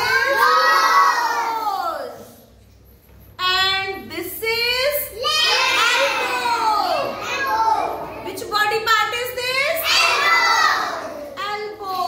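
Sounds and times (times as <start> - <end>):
children shouting together: 0.0 - 2.4, 5.1 - 8.2, 9.8 - 11.4.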